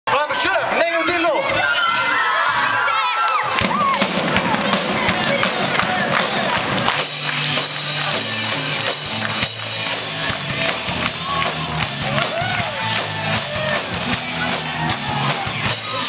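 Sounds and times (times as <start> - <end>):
children cheering and shouting: 0.1 - 8.8, 9.9 - 16.0
clapping: 3.2 - 14.6
rock band playing: 3.6 - 16.0.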